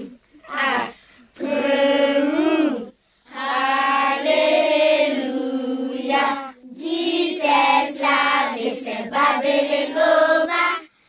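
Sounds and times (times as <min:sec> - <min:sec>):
person singing unaccompanied: 0:00.0 - 0:10.9.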